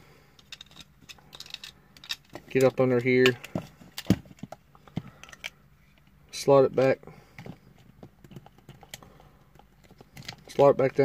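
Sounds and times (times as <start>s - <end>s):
plastic toy parts clicking: 0.4s - 4.5s.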